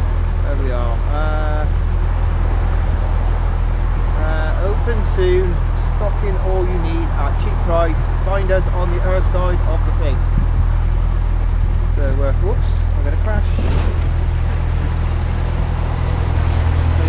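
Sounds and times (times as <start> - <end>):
diesel engine humming: 0.0 - 17.0.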